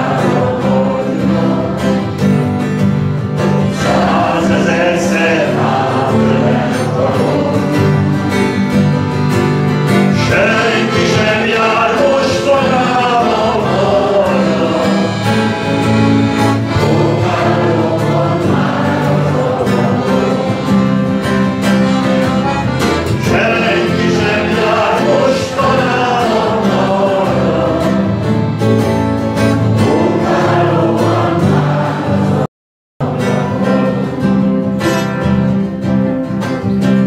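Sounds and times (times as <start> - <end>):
accordion chords: 0.0 - 37.0
acoustic guitar: 0.0 - 37.0
man singing: 3.6 - 8.4, 10.0 - 15.8, 16.7 - 20.8, 23.2 - 28.1.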